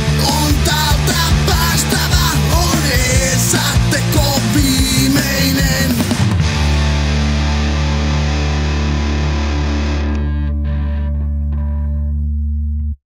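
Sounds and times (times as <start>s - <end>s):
drums: 0.0s - 10.8s
distorted electric guitar chord: 0.0s - 13.0s.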